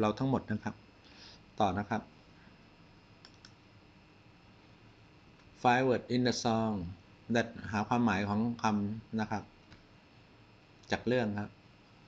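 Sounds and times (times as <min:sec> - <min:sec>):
computer mouse clicks: 0:03.2 - 0:03.6.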